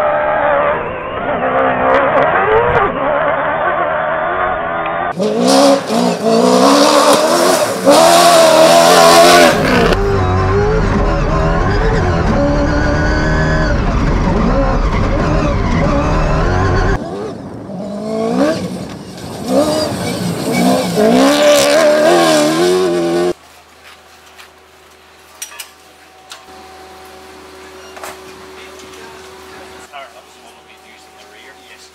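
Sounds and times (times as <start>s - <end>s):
car engine revving: 0.0s - 23.4s
deep rumble: 9.5s - 21.0s.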